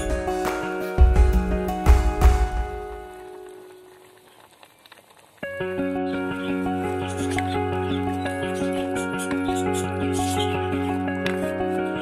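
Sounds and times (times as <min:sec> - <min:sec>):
background music: 0:00.0 - 0:04.1, 0:05.4 - 0:12.0
curry boiling in a clay pot: 0:03.4 - 0:06.2.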